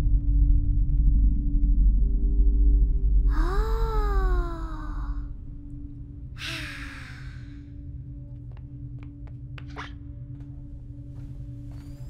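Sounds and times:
steady low hum: 0.0s - 12.0s
breathy sigh: 3.3s - 5.3s, 6.4s - 7.7s.

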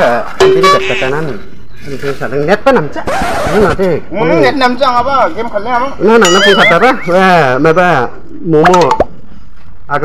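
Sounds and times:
person speaking: 0.0s - 3.0s.

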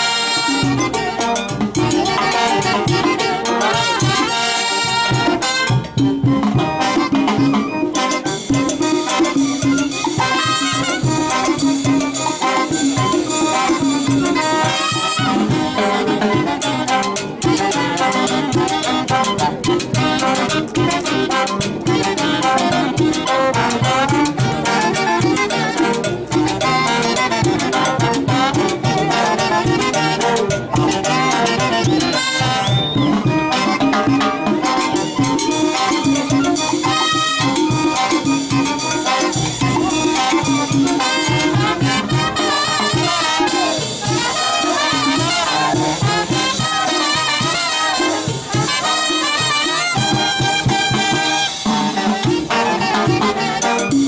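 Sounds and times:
brass band playing dance music: 0.0s - 54.0s
percussion and drum kit beat: 0.0s - 54.0s
high whistle-like note: 31.9s - 33.2s.

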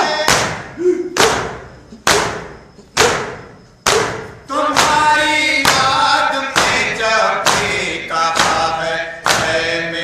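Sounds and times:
crowd beating chests: 0.0s - 9.8s
voices chanting: 0.0s - 10.0s.

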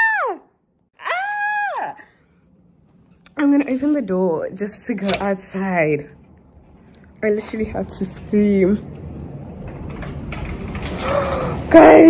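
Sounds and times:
woman gasping: 11.0s - 11.7s.

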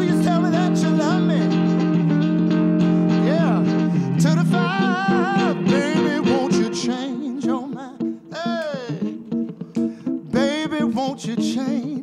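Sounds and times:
electric guitar note sliding down: 0.0s - 7.6s
live band music: 0.0s - 11.8s.

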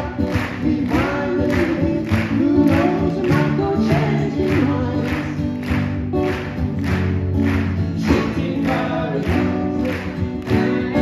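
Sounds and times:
group singing: 0.0s - 5.4s, 8.0s - 11.0s
acoustic guitars strummed: 0.0s - 11.0s.

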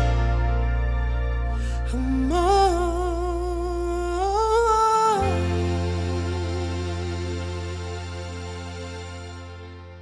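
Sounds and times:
bass: 0.0s - 10.0s
sustained keyboard chords: 0.0s - 10.0s
man singing wordless vibrato: 1.7s - 8.4s.

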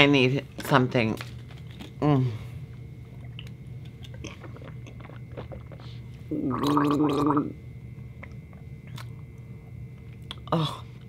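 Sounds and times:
sips and swallows: 4.1s - 7.5s
woman gargling: 6.3s - 7.6s, 10.4s - 10.9s.

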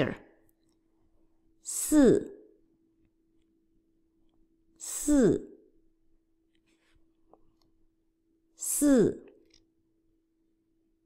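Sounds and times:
woman saying a syllable: 0.0s - 0.3s, 1.6s - 2.5s, 4.8s - 5.7s, 8.6s - 9.4s
faint steady hum: 0.0s - 11.0s.

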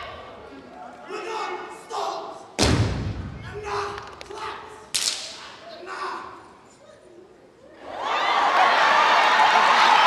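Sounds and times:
heavy stomp on stage floor: 2.6s - 3.4s.

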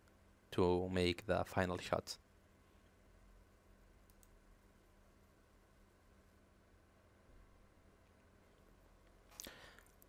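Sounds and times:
steady low hum: 0.0s - 10.0s
computer mouse clicks: 4.0s - 4.4s.

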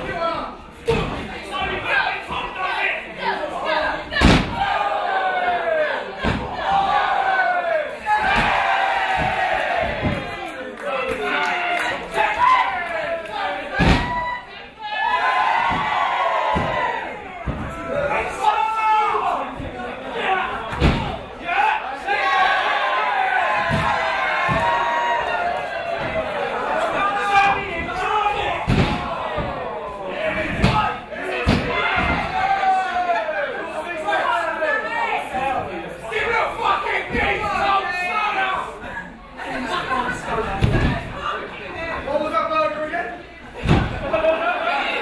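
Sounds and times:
crowd shouting: 0.0s - 38.8s.

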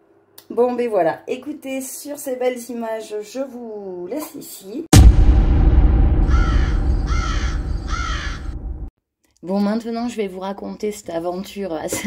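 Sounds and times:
deep rumbling drone: 4.9s - 8.9s
crow cawing: 6.2s - 8.8s.

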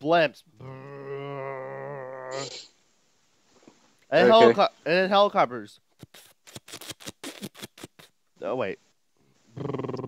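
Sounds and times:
people talking: 1.3s - 2.6s, 4.1s - 5.8s.

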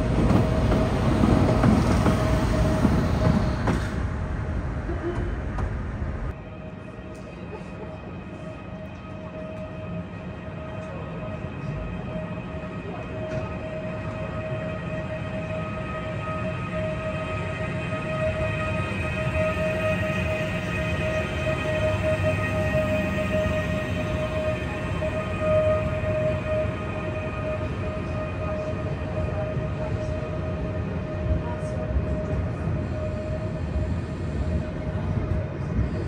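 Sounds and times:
electric train rumble and whine: 0.0s - 36.0s.

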